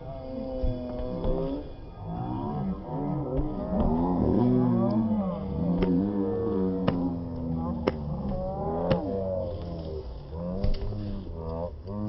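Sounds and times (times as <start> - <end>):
low steady rumble: 0.0 - 12.0
voices calling out: 0.0 - 12.0.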